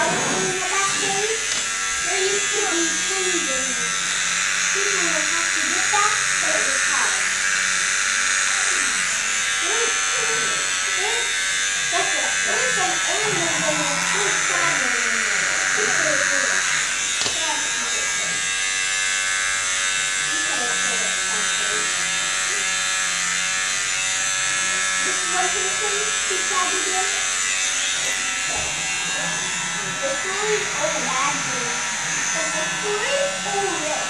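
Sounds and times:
people talking: 0.0 - 4.0, 4.7 - 7.3, 8.6 - 11.3, 11.9 - 16.6, 17.2 - 18.4, 20.3 - 22.8, 25.0 - 27.2, 28.5 - 34.0
electric hair clippers buzzing: 0.0 - 34.0.

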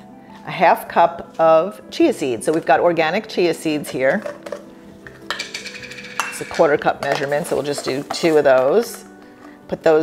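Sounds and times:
jar lid scraping rattle: 3.9 - 9.1.

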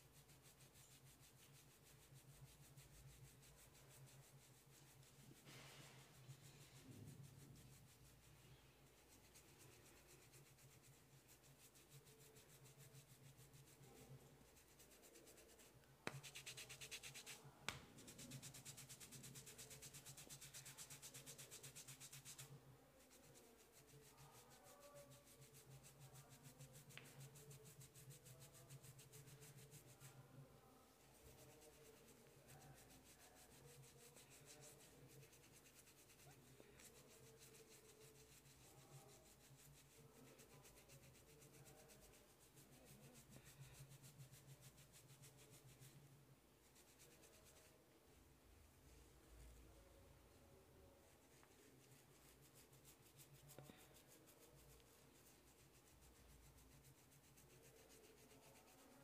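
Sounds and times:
hands rubbing oiled hair: 8.9 - 22.5.

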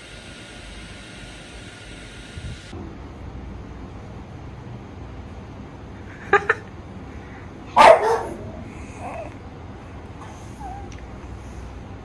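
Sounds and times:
dog barking: 7.7 - 9.2.

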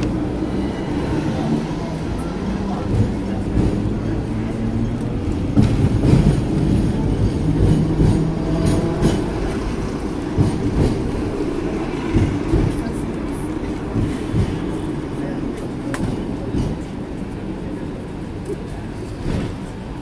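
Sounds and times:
tram wheels and motor rumbling: 0.0 - 20.0.

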